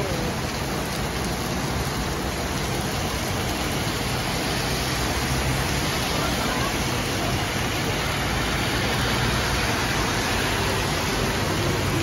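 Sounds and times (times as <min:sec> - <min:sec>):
bus engine rumbling: 0:00.0 - 0:12.0
heavy rain on road: 0:00.0 - 0:12.0.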